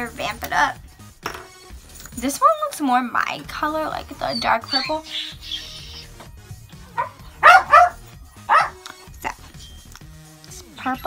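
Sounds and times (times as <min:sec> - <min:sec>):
dog barking: 0:06.9 - 0:08.8.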